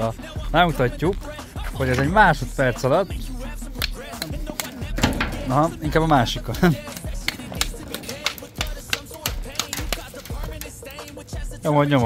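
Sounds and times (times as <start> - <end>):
background music with a beat: 0.0 - 12.0
sharp clicks: 3.8 - 5.5, 6.8 - 11.2.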